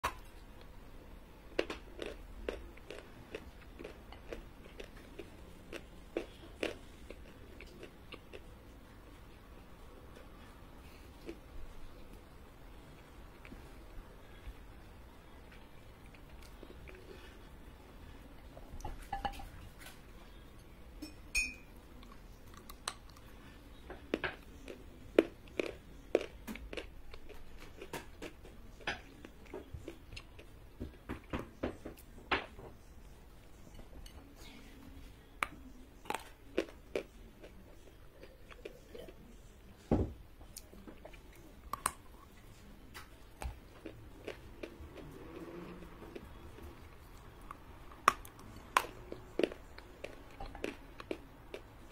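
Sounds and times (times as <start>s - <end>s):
person chewing crunchy clay: 1.5s - 8.5s, 43.3s - 51.9s.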